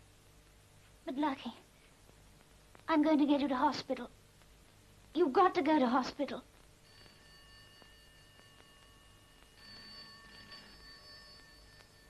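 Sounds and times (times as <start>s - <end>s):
telephone ringing faintly: 6.8s - 12.0s.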